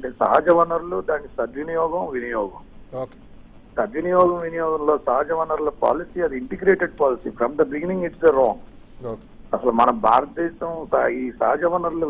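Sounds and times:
person talking over telephone: 0.0 - 3.2.

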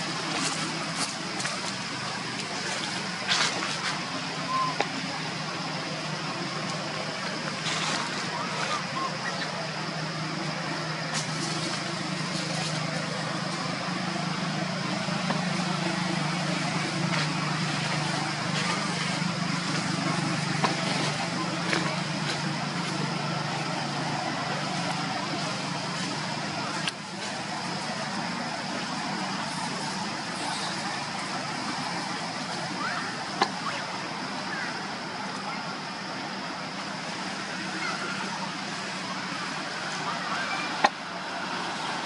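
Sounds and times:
thin high whine: 0.0 - 42.0
vehicle engine hum: 0.0 - 42.0.

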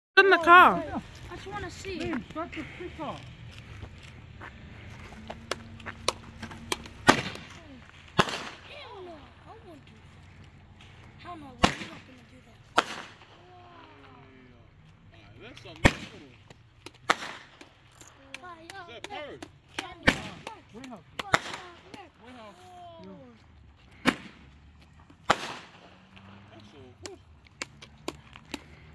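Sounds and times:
roman candle bangs: 6.1 - 8.7, 12.7 - 13.3, 25.3 - 25.7.

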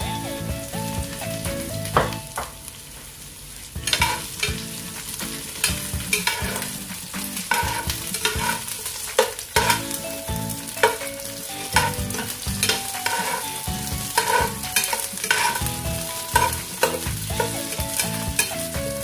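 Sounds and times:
onions sizzling in hot oil: 0.0 - 19.0
spatula scraping and tapping pan: 3.8 - 10.0, 10.7 - 19.0.

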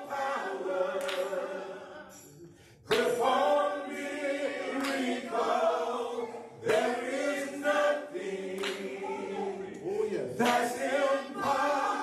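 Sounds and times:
men singing gospel in harmony: 0.0 - 12.0.

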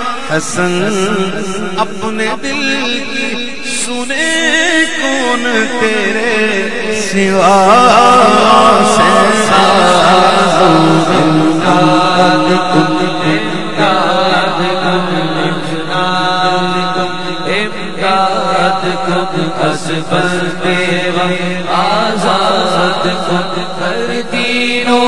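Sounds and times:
man singing through microphone: 0.0 - 25.0.

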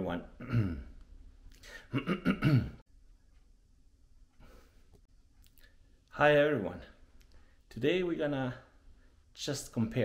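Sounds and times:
man clearing his throat: 0.4 - 1.0, 1.8 - 2.8.

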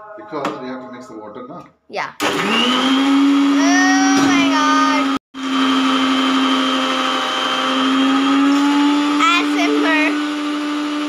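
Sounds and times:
mixer grinder motor hum: 2.2 - 11.0.

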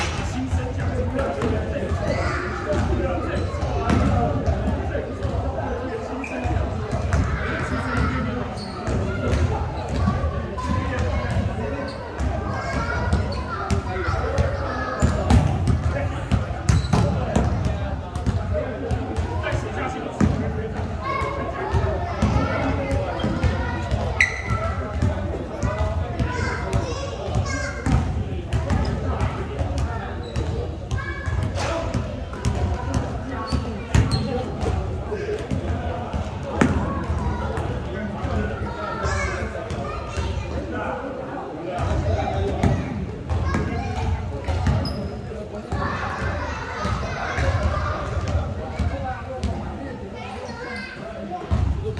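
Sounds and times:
players talking: 0.0 - 51.9
basketball bouncing on court floor: 14.4 - 19.4, 21.2 - 34.8, 42.6 - 45.0
basketball bouncing on gym floor: 14.4 - 19.4.

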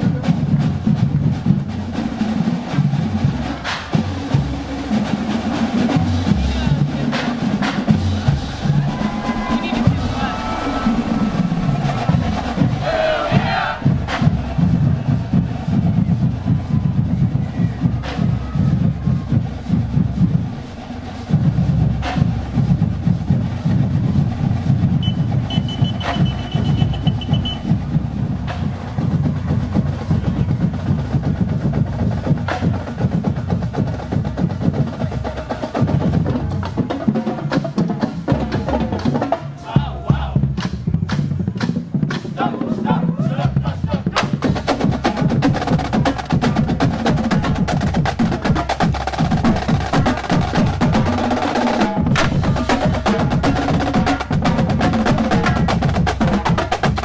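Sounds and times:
marching drumline cadence: 0.0 - 57.0.

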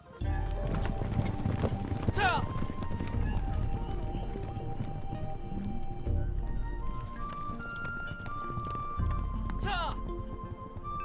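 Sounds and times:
horses galloping hoofbeats: 0.0 - 11.0
soundtrack score: 0.0 - 11.0.

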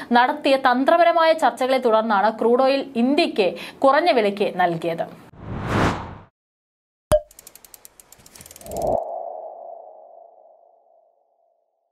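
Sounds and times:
whoosh: 5.3 - 6.3
quick run of ticks: 7.3 - 9.0.

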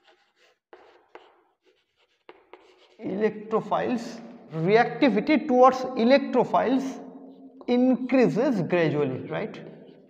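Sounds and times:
chalk tapping on board: 0.0 - 3.0
chalk scratching on chalkboard: 0.0 - 4.7, 9.8 - 10.0.

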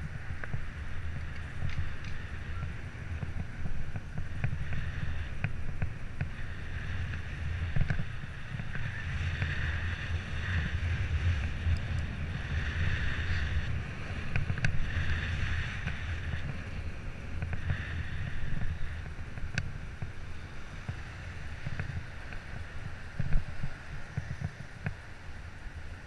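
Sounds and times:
wind buffeting microphone: 0.0 - 26.0
small clicks: 1.2 - 2.2.

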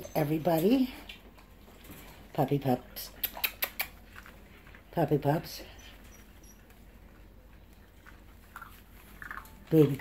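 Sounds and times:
puppies chewing dry kibble: 3.0 - 10.0.

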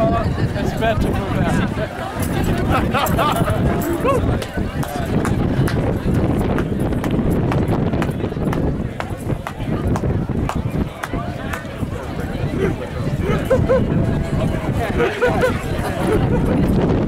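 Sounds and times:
crowd voices: 0.0 - 17.0
wind buffeting microphone: 0.0 - 17.0.

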